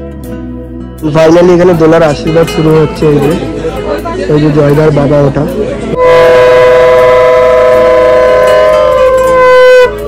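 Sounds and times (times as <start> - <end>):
conch shells blown: 6.0 - 10.0.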